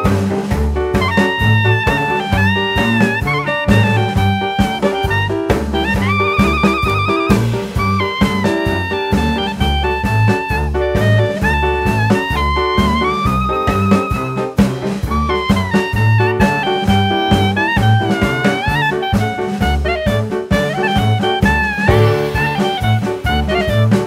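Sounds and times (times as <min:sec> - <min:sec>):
bass line: 0:00.0 - 0:24.0
drums: 0:00.0 - 0:24.0
jazz horn melody: 0:00.0 - 0:24.0.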